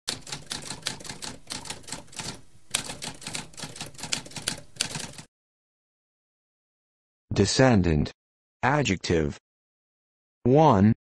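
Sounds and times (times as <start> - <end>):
typewriter keys clacking: 0.1 - 5.3.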